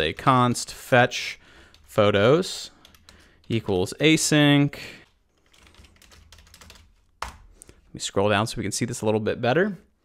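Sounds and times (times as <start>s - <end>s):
computer keyboard keystrokes: 2.8s - 3.6s, 5.0s - 7.4s.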